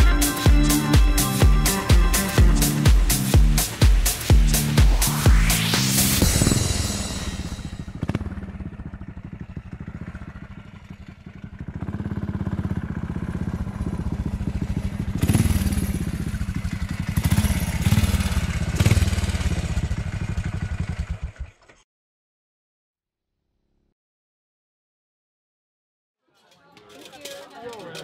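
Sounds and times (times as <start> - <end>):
motorcycle engines pulsing: 0.0 - 21.6.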